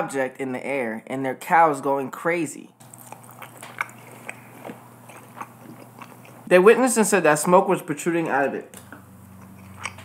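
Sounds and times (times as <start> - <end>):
person chewing food: 2.8 - 6.5, 8.8 - 10.0.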